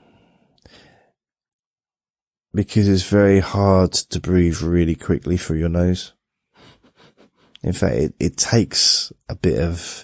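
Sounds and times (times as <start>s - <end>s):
man breathing softly: 0.0s - 1.2s, 6.5s - 7.6s.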